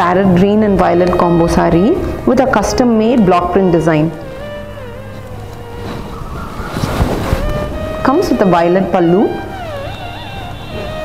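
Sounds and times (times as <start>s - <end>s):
music with sustained notes: 0.0s - 11.0s.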